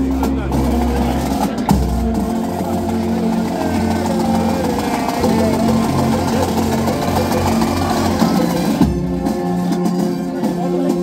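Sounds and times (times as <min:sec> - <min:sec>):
brass band playing: 0:00.0 - 0:11.0
low sustained brass notes: 0:01.7 - 0:11.0.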